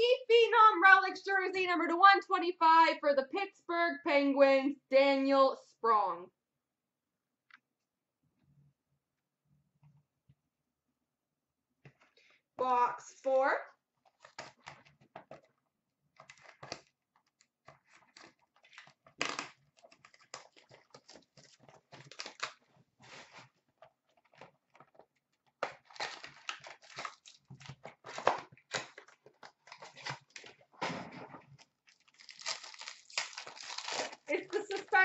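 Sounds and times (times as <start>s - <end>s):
wrapping tearing and crinkling: 14.0s - 15.4s, 16.2s - 35.0s
cardboard and cards handled: 14.1s - 35.0s.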